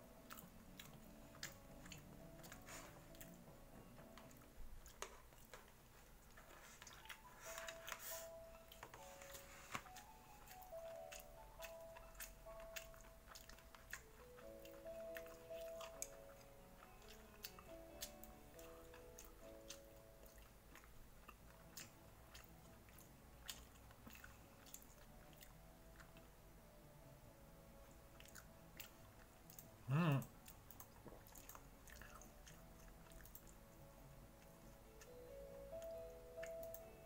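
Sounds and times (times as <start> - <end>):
quiet background melody: 0.0 - 37.0
person chewing food: 0.1 - 26.3, 27.9 - 36.9.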